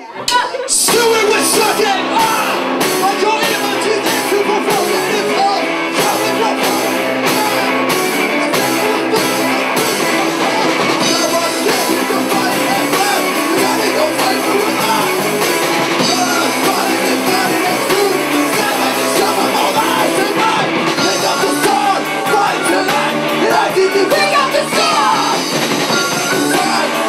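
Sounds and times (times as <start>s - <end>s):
live rock band playing: 0.0s - 27.0s.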